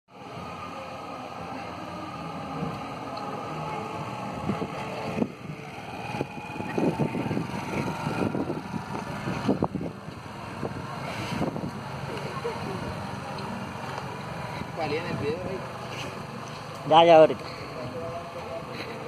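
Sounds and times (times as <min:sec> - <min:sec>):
motorcycle engine running: 0:00.1 - 0:19.0.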